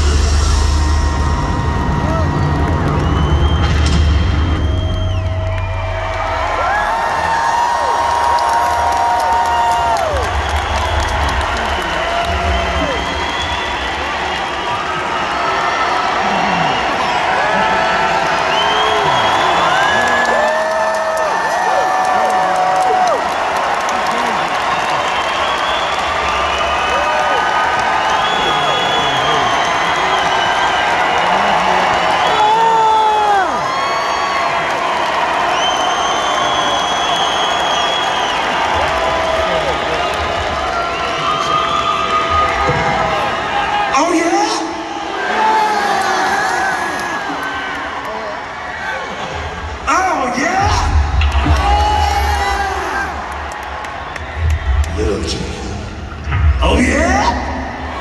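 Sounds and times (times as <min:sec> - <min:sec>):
crowd cheering and whooping: 0:00.0 - 0:58.0.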